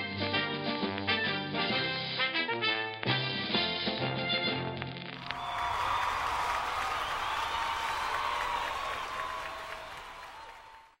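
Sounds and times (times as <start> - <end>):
audience applause: 5.2 - 11.0.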